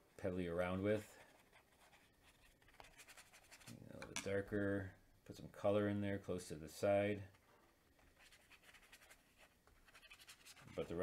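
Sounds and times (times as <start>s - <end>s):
paintbrush scratching on paper: 1.2s - 3.7s, 8.1s - 11.0s.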